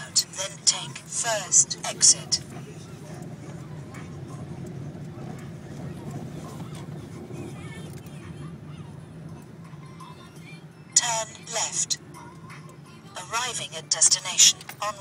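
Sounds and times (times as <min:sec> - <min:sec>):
car engine and tyres drone: 0:00.0 - 0:15.0.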